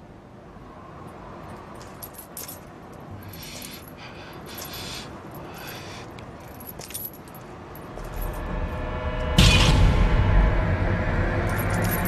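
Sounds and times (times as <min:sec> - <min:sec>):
chain links jingling: 0:01.4 - 0:08.4, 0:11.5 - 0:12.0.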